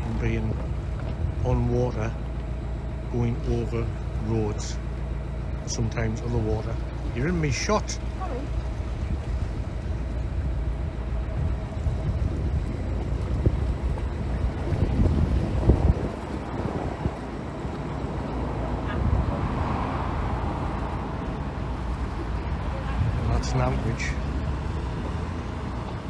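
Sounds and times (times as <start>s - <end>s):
boat engine running: 0.0s - 26.0s
wind on microphone: 8.5s - 26.0s.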